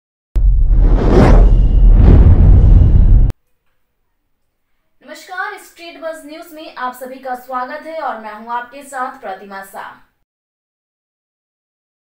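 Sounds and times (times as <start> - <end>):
deep bass rumble: 0.4 - 3.3
whoosh sweeping up: 0.4 - 3.3.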